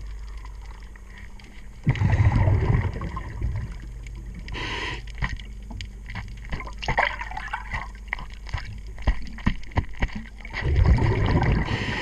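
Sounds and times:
exhaled bubbles gurgling: 0:00.0 - 0:12.0
regulator inhale hiss: 0:04.5 - 0:05.2, 0:11.6 - 0:12.0.

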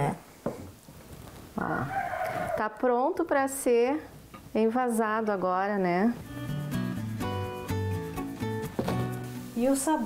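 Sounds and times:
instrumental background music: 0:06.0 - 0:10.0.

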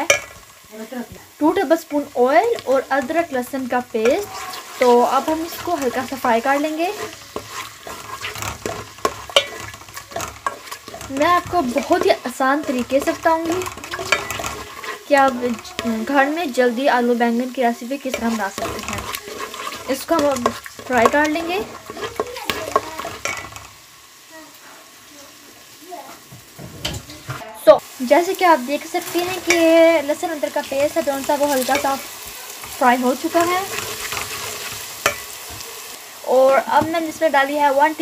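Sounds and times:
paste sizzling in hot oil: 0:00.0 - 0:38.0
spatula scraping metal pot: 0:01.9 - 0:23.8, 0:29.0 - 0:35.7.

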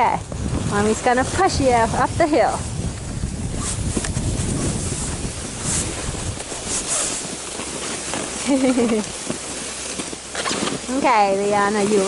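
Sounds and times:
plastic sled sliding over snow: 0:00.0 - 0:12.0
wind rumbling on microphone: 0:00.0 - 0:12.0
scrapes and crunches: 0:03.2 - 0:12.0.

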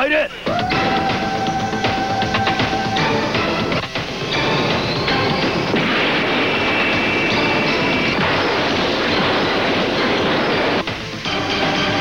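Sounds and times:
high-pitched whine: 0:00.4 - 0:12.0
energy blast rushing: 0:04.0 - 0:12.0.

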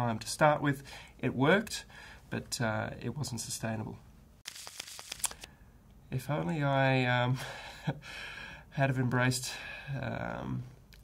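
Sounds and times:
small clicks: 0:04.4 - 0:05.5.

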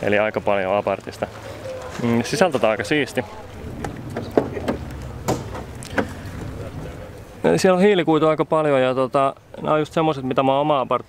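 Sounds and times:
wind rumbling on microphone: 0:02.7 - 0:07.5.

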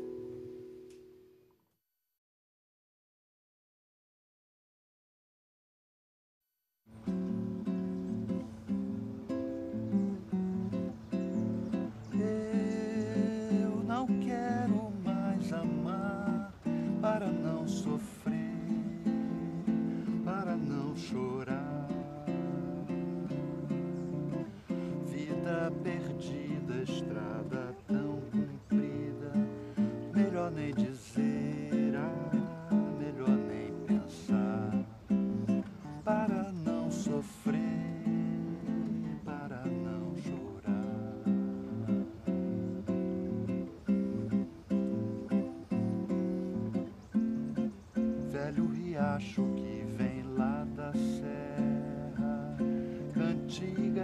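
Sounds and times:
plucked nylon-string guitar: 0:00.0 - 0:01.5, 0:06.9 - 0:54.0
man singing: 0:11.6 - 0:44.4, 0:47.5 - 0:54.0.

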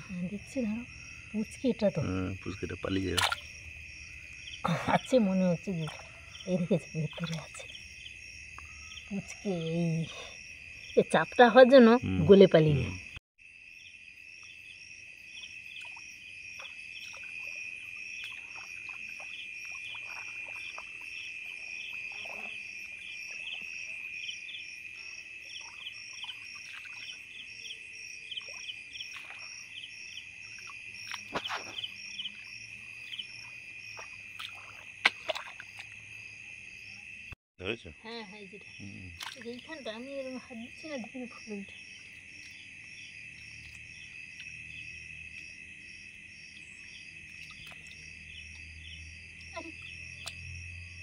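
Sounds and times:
insects trilling and chirping: 0:00.0 - 0:51.0
soft clicks in wet grass: 0:03.2 - 0:03.5, 0:39.2 - 0:39.7, 0:43.3 - 0:44.6, 0:47.3 - 0:48.7, 0:50.2 - 0:50.4
frog calls: 0:37.9 - 0:51.0.

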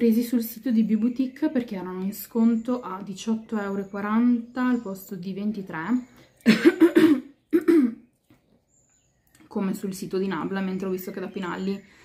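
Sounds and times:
woman coughing: 0:06.4 - 0:08.0.

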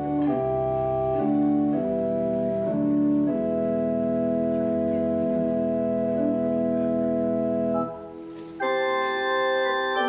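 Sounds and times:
organ playing slow chords: 0:00.0 - 0:10.0.

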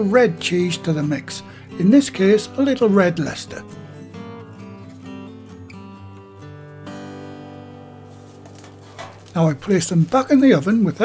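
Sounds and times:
acoustic guitar held notes: 0:00.0 - 0:09.8.

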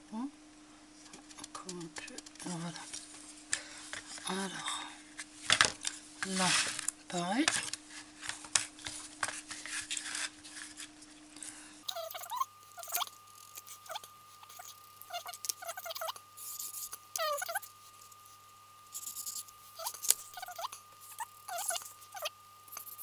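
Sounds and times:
marker squeaking on cardboard: 0:11.9 - 0:17.7, 0:19.0 - 0:23.0.

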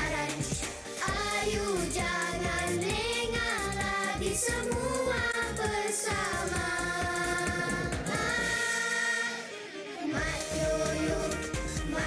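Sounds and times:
drums and bass: 0:00.0 - 0:08.7, 0:10.2 - 0:12.0
group of voices singing: 0:00.0 - 0:12.0.

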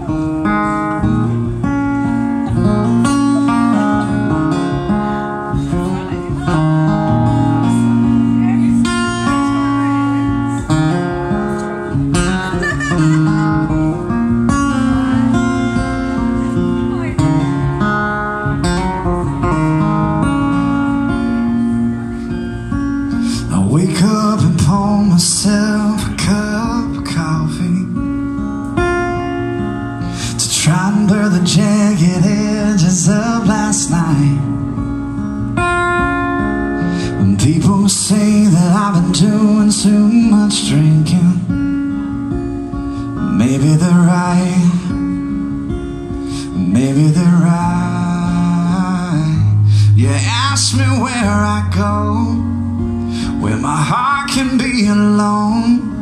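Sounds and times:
acoustic guitar playing: 0:00.0 - 0:56.0
man singing: 0:23.1 - 0:28.5, 0:30.2 - 0:34.8, 0:36.7 - 0:42.0, 0:43.0 - 0:56.0.

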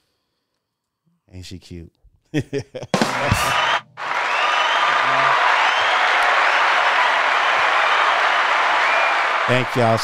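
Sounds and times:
crowd applause: 0:03.0 - 0:10.0.

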